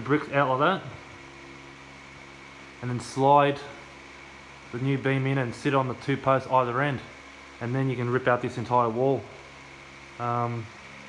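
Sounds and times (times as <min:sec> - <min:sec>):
steady low hum: 0:00.0 - 0:11.0
man speaking: 0:04.7 - 0:09.3, 0:10.2 - 0:10.7
faint high whine: 0:10.2 - 0:11.0.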